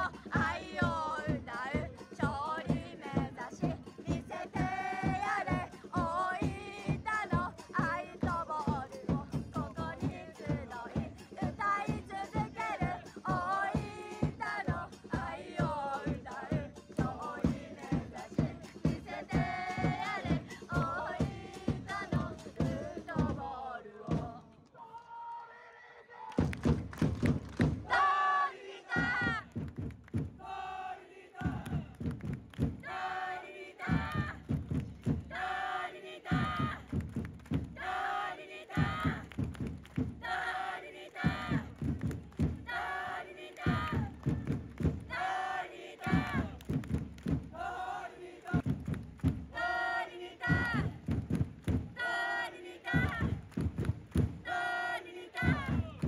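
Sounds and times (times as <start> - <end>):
drums beating: 0.0 - 24.4, 26.4 - 56.0
crowd chanting in unison: 0.0 - 26.9, 27.6 - 37.0, 37.6 - 56.0.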